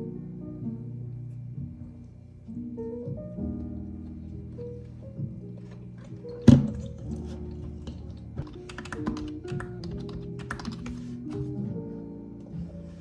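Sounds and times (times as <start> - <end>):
background music: 0.0 - 13.0
typing on computer keyboard: 7.9 - 11.0.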